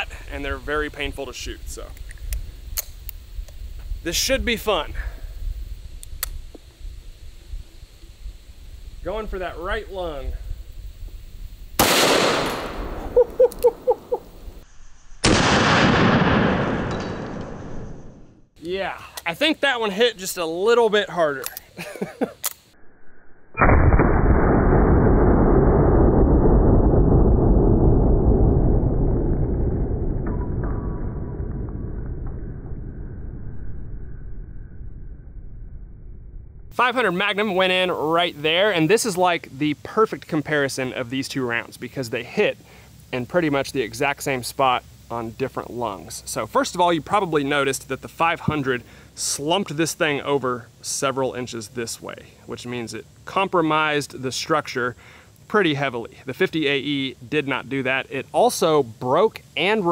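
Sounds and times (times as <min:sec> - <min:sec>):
sharp clicks: 0:01.9 - 0:03.6, 0:06.0 - 0:06.5, 0:11.8 - 0:13.8, 0:22.4 - 0:22.8
slowed gunshot boom: 0:11.8 - 0:13.2, 0:15.2 - 0:18.5, 0:23.5 - 0:36.7
low steady rumble: 0:23.6 - 0:38.8.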